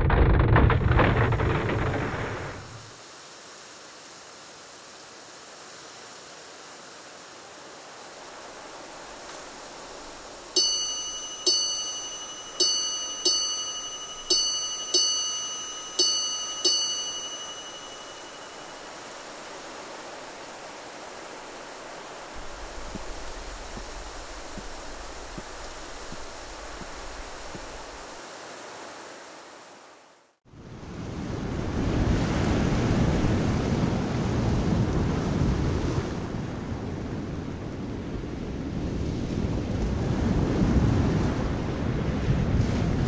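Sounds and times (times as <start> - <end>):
faint steady hiss: 2.4 - 30.3
small high-pitched bell ringing: 10.6 - 19.7.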